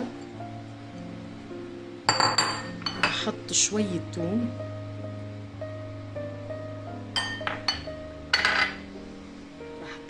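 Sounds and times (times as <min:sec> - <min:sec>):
background music: 0:00.0 - 0:10.0
ceramic bowl clinking on steel pot: 0:02.1 - 0:03.3, 0:07.2 - 0:08.8.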